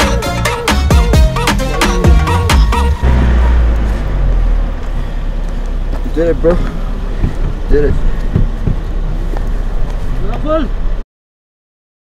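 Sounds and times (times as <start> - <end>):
person calling out: 1.3 - 3.0
wind buffeting microphone: 2.9 - 10.9.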